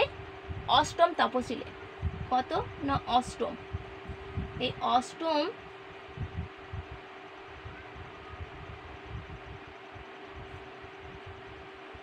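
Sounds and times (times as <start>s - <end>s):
room fan humming: 0.0s - 12.0s
soft low thuds: 1.7s - 4.8s.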